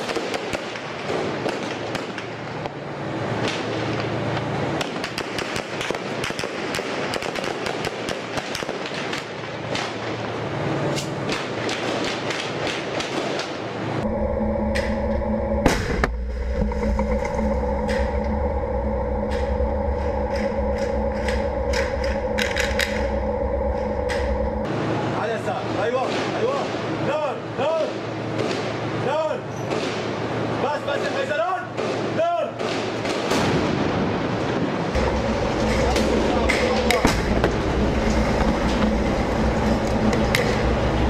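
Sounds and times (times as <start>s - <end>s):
gunfire crackle: 0.0s - 2.8s, 4.8s - 10.3s, 11.0s - 13.7s
tank engine drone: 0.9s - 29.0s, 33.4s - 41.0s
loud bang: 14.0s - 24.7s, 35.0s - 41.0s.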